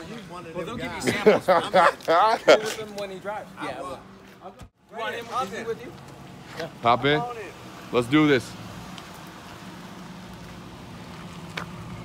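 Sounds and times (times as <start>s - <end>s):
light outdoor hiss: 1.8s - 12.0s.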